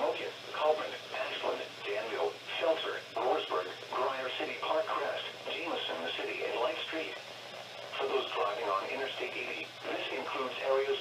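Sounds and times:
broadcast voice through radio speaker: 0.0s - 11.0s.

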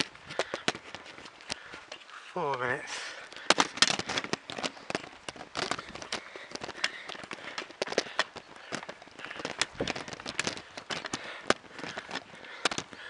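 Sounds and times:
camera handling clicks and rustling: 3.3s - 13.0s.

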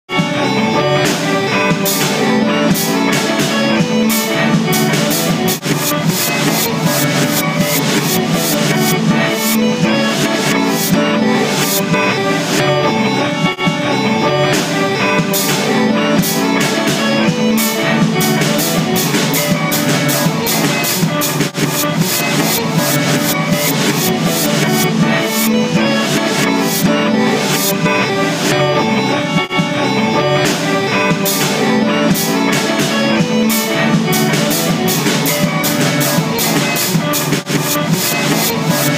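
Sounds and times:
keyboard: 0.0s - 38.9s
bass guitar: 0.1s - 38.9s
rock band playing: 0.1s - 38.9s
drums and cymbals: 1.0s - 12.6s, 14.5s - 27.8s, 30.4s - 38.9s.

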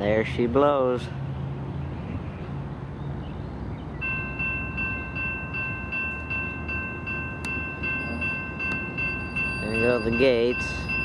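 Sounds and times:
diesel locomotives rumbling: 0.0s - 11.0s
railroad crossing bell ringing: 4.0s - 11.0s.

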